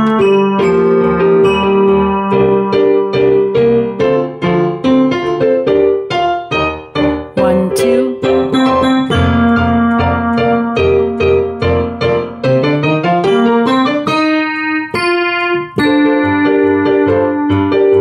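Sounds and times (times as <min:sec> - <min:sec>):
bass line: 0:00.0 - 0:04.0, 0:07.0 - 0:12.0
piano chords: 0:00.0 - 0:18.0.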